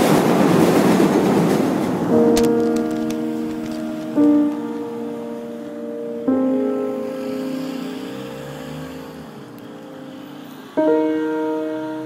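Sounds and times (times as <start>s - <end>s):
distant vehicle rumble: 1.4s - 12.0s
piano chord ringing: 2.0s - 12.0s.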